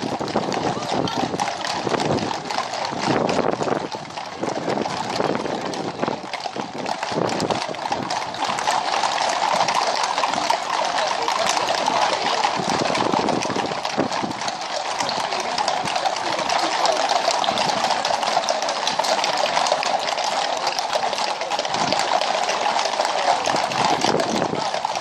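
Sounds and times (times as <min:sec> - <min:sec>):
horse hooves on tarmac: 0:00.0 - 0:25.0.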